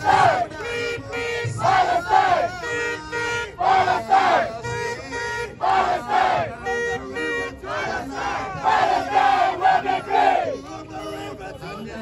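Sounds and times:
crowd chanting in unison: 0.0 - 2.7, 3.4 - 4.7, 5.5 - 11.0.

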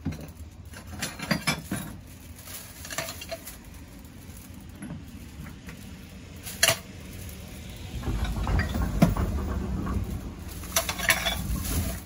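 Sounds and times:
plastic bag rustling: 0.0 - 12.0
low rumble: 6.0 - 12.0.

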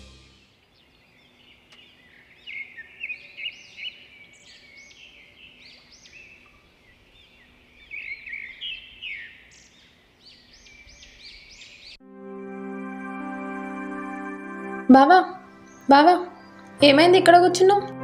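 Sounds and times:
small birds chirping: 0.4 - 12.0, 15.5 - 17.4.

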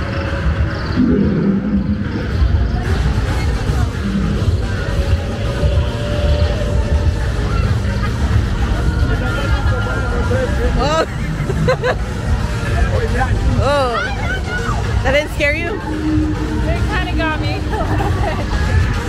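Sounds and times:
deep rumble: 0.0 - 13.6, 14.8 - 19.0
crowd talking and calling out: 0.0 - 19.0
music: 0.0 - 19.0
raised swooping voices: 0.0 - 19.0.

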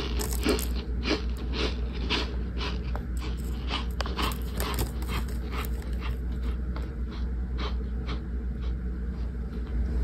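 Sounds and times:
crunching and chewing: 0.0 - 9.8.

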